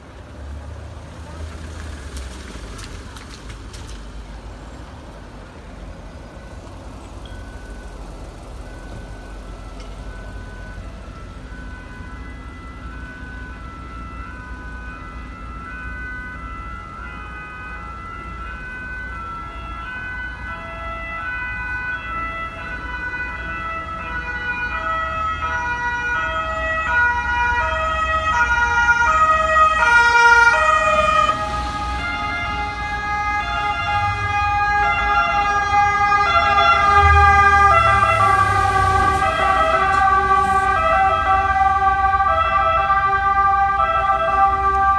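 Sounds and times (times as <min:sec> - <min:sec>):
low vehicle rumble: 0:00.0 - 0:44.9
two-tone emergency sirens: 0:06.3 - 0:44.9.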